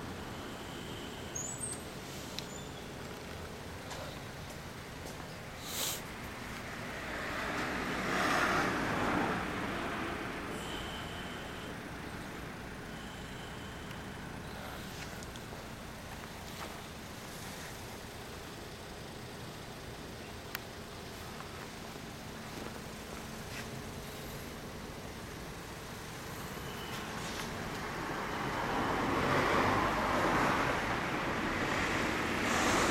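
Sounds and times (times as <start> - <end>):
street traffic noise: 0.0 - 32.9
vehicle passing by: 6.6 - 10.9, 26.5 - 32.9
rushing noise: 28.0 - 32.9.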